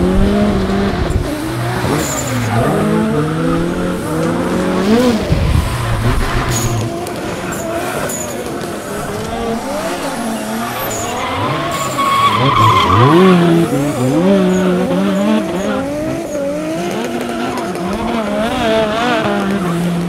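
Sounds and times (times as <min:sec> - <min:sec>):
radio-controlled cars running: 0:00.0 - 0:20.0.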